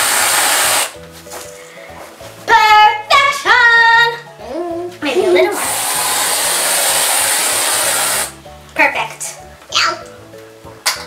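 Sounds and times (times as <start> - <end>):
aerosol can spraying hiss: 0.0 - 1.0, 5.5 - 8.4.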